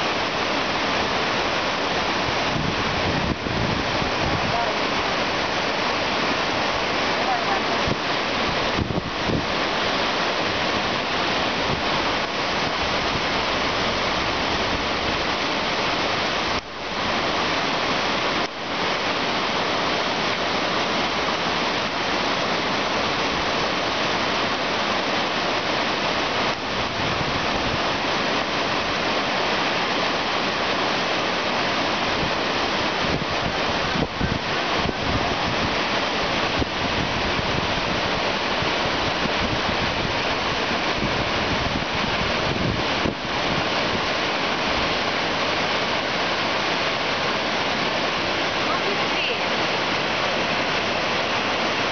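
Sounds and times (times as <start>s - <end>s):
river rapids rushing: 0.0s - 51.9s.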